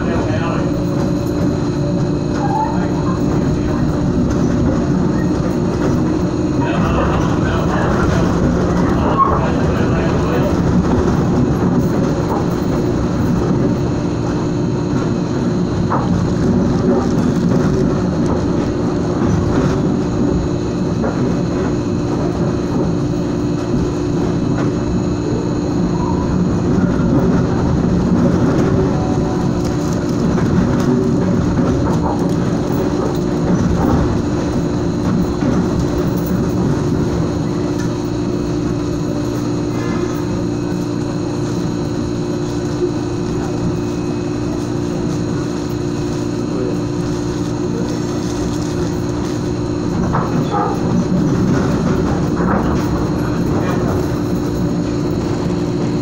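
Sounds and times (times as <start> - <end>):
constant hum: 0.0 - 56.0
train wheels rumbling on rail: 0.0 - 56.0.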